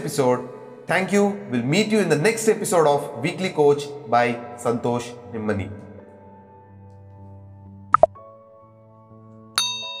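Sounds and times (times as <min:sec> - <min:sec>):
bright bell ding: 0:09.6 - 0:10.0.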